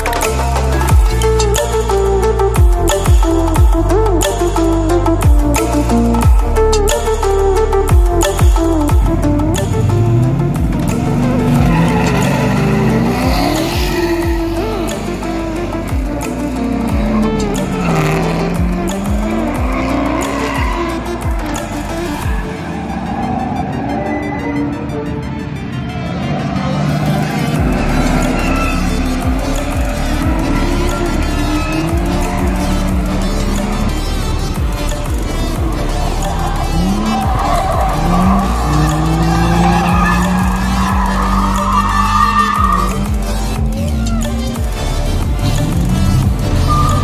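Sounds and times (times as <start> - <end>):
music with regular beat: 0.0 - 23.4, 26.9 - 47.0
car engine revving: 0.0 - 47.0
tyres squealing: 9.6 - 24.8, 26.9 - 47.0.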